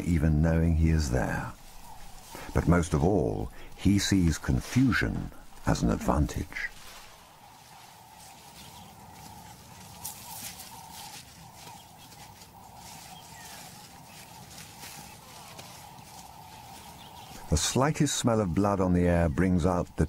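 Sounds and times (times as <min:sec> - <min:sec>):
rustling of leaves and grass: 0:00.0 - 0:20.0.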